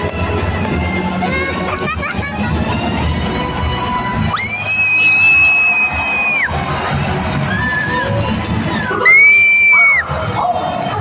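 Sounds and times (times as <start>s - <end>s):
show music: 0.0s - 11.0s
crowd cheering: 4.2s - 11.0s.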